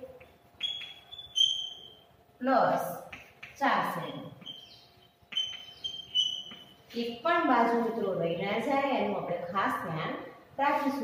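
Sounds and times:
chalk squeaking on a blackboard: 0:00.2 - 0:02.0, 0:03.1 - 0:07.0.

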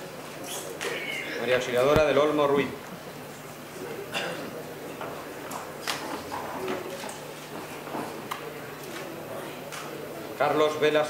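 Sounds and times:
faint room murmur: 0:00.0 - 0:11.0.

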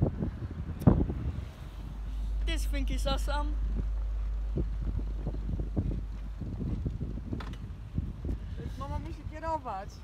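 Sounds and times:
wind rumbling on microphone: 0:00.0 - 0:10.0
pedal car knocks and rattles: 0:03.7 - 0:08.3.

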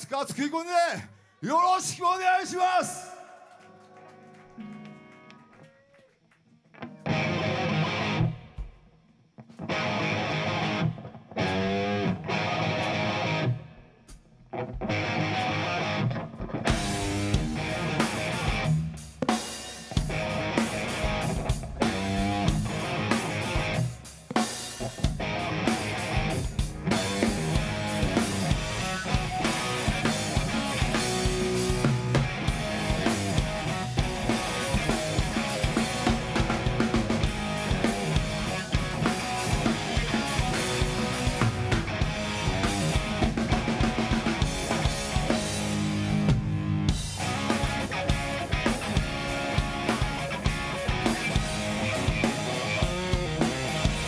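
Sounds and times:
electric guitar playing chords: 0:06.8 - 0:08.7, 0:09.5 - 0:13.9, 0:14.6 - 0:19.0, 0:20.0 - 0:54.0
drum kit playing: 0:16.7 - 0:54.0.

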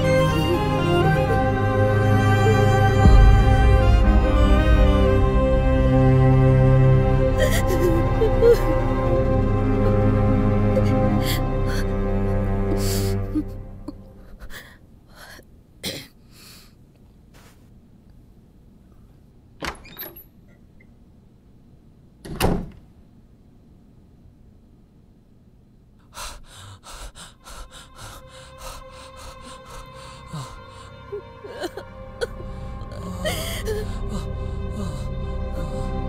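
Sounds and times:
background music score: 0:00.0 - 0:15.0, 0:26.9 - 0:36.0
woman crying breaths and sniffs: 0:07.3 - 0:08.9, 0:26.1 - 0:36.0.

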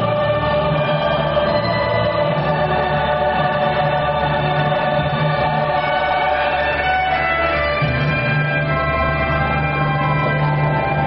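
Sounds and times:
choir singing long notes: 0:00.0 - 0:11.0
steady low accompaniment: 0:00.0 - 0:11.0.

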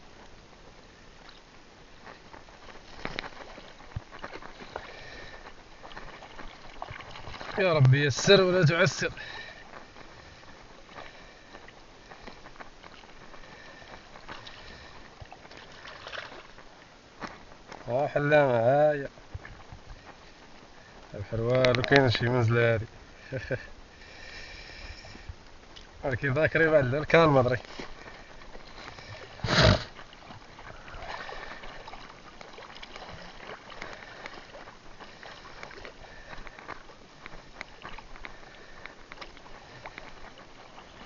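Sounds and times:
small clicks and crackles: 0:00.1 - 0:08.0, 0:08.6 - 0:18.0, 0:19.0 - 0:22.4, 0:24.8 - 0:41.0
water sloshing and splashing: 0:01.1 - 0:23.5, 0:25.0 - 0:41.0.

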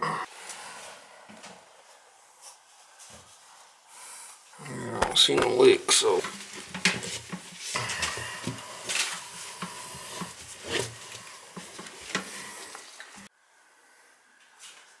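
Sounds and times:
hand handling metal valve: 0:05.0 - 0:13.3.

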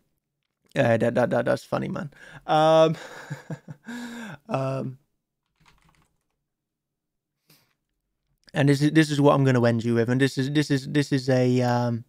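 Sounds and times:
faint keyboard typing: 0:05.4 - 0:06.4.

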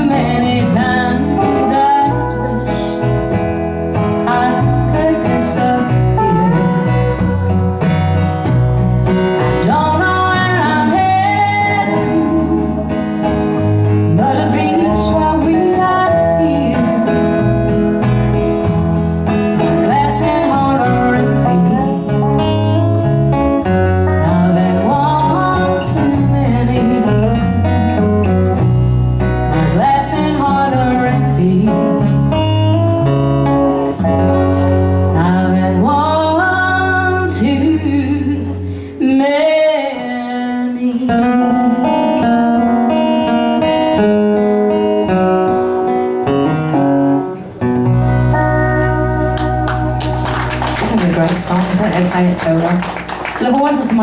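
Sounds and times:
electric bass: 0:00.0 - 0:39.0, 0:41.4 - 0:54.0
acoustic guitar: 0:00.0 - 0:54.0.

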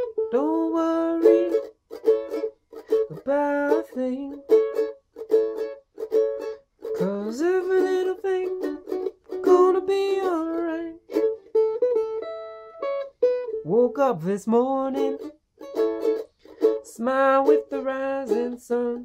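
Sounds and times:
man singing: 0:00.0 - 0:01.7, 0:03.0 - 0:04.8, 0:06.9 - 0:11.3, 0:13.6 - 0:15.3, 0:16.6 - 0:19.0
mandolin strummed chords: 0:00.0 - 0:19.0.

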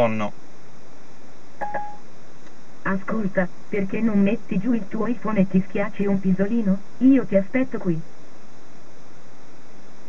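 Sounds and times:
steady line hiss: 0:00.0 - 0:10.0.

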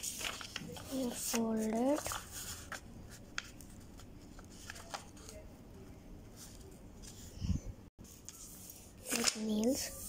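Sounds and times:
paper rustling and rubbing: 0:00.0 - 0:05.4, 0:08.0 - 0:10.0.

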